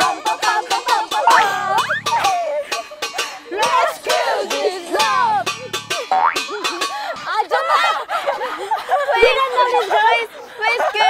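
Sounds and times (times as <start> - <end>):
cartoon boing: 1.3 - 2.3, 5.4 - 6.5
women chattering excitedly: 6.8 - 11.0.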